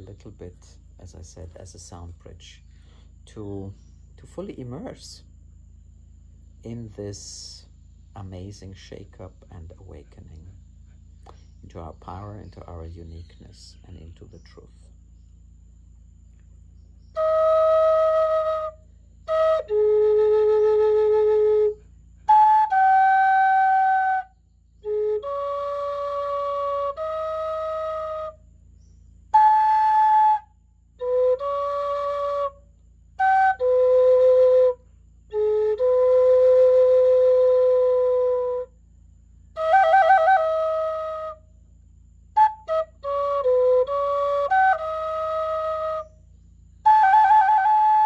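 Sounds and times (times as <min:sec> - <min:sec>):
faint low hum: 0:00.0 - 0:48.0
wooden flute long note: 0:17.1 - 0:28.4, 0:29.3 - 0:38.8, 0:39.6 - 0:41.5, 0:42.3 - 0:46.2, 0:46.8 - 0:48.0.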